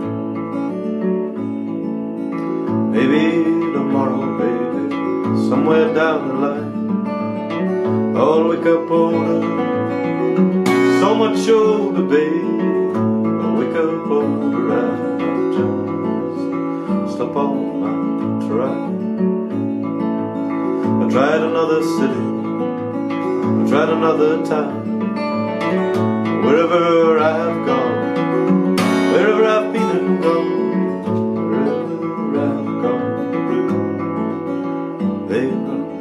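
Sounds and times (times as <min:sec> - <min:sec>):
fingerstyle acoustic guitar: 0:00.0 - 0:36.0.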